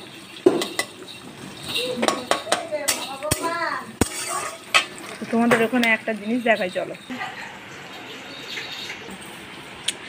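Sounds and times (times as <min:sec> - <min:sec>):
onions frying in oil: 0:00.0 - 0:10.0
metal spatula scraping a pan: 0:00.6 - 0:05.8.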